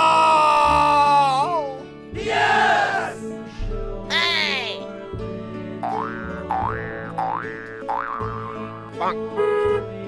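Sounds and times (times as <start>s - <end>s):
background music: 0.0s - 10.0s
cartoon boing sound effect: 5.8s - 8.6s.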